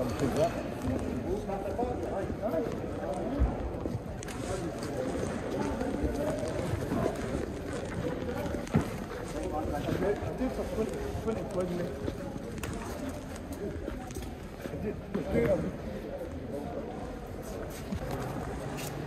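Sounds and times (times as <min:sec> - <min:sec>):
background chatter: 0:00.0 - 0:19.0.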